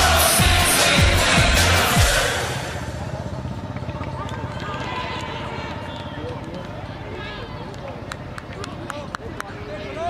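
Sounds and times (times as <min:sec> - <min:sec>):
background music: 0:00.0 - 0:03.0
distant voices: 0:02.0 - 0:10.0.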